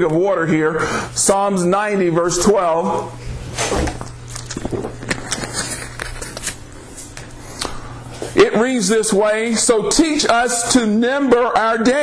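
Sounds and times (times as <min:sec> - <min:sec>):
steady low hum: 0:00.0 - 0:12.0
pages rustling and turning: 0:03.4 - 0:07.6.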